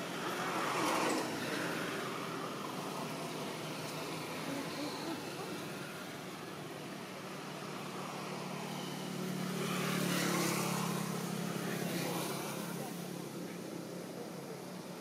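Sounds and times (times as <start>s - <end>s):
vehicle engine passing by: 0.0s - 14.8s.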